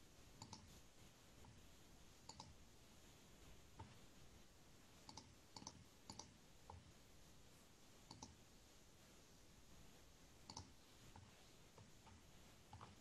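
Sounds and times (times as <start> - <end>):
faint clicks: 0.4 - 0.7, 2.2 - 2.6, 5.0 - 6.8, 8.1 - 8.4, 10.4 - 13.0.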